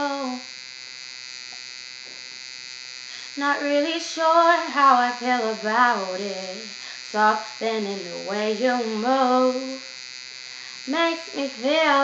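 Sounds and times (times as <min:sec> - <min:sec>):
electrical buzz with high whine: 0:00.0 - 0:12.0.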